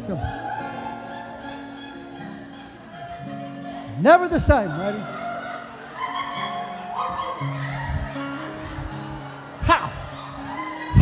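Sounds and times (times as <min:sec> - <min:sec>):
soft instrumental music: 0:00.0 - 0:11.0.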